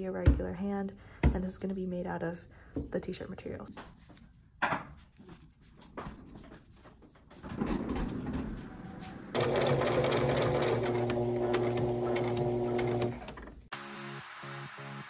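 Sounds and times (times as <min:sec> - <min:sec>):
sewing machine stitching: 0:09.3 - 0:13.6
electronic music: 0:13.7 - 0:15.0.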